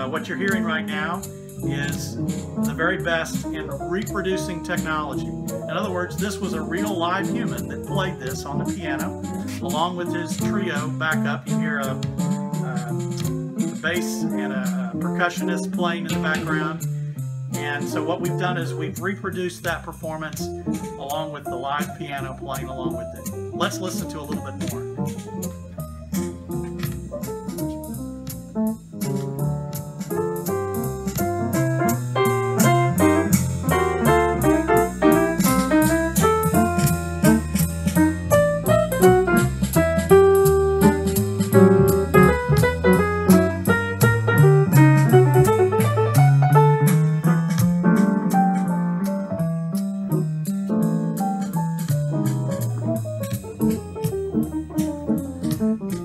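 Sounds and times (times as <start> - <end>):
bass and percussion from speaker: 0.0 - 16.9, 17.5 - 56.0
upright piano playing: 0.0 - 56.0.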